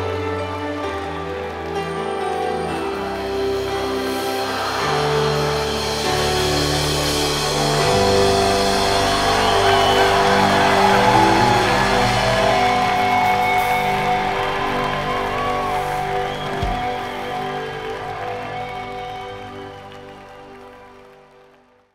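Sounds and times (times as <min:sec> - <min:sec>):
crowd applauding and cheering: 0:00.0 - 0:21.9.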